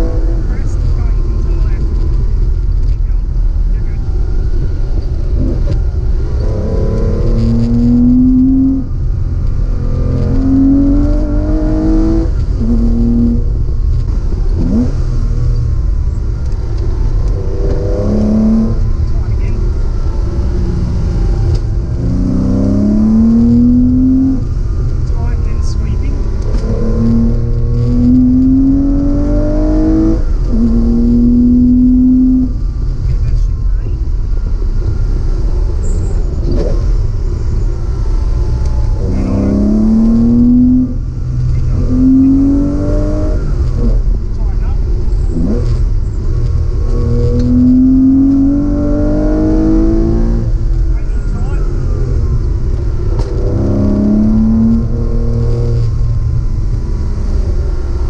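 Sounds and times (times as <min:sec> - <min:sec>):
car engine accelerating: 0:00.0 - 0:58.0
exhaust backfire pops: 0:52.4 - 0:56.2.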